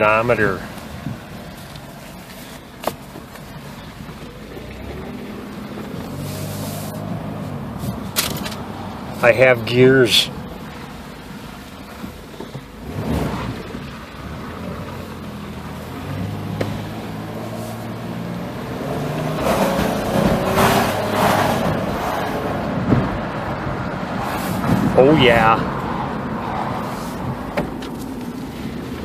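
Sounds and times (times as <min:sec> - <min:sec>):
road noise: 0:00.0 - 0:29.0.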